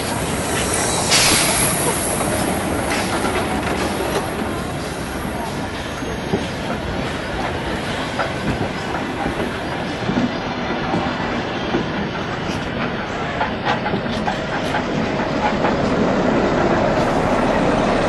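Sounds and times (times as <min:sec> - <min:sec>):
train wheels rumbling on rails: 0:00.0 - 0:18.0.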